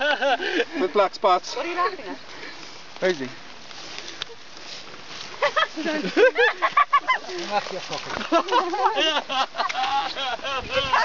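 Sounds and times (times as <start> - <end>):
people laughing: 0.0 - 1.0, 5.4 - 11.0.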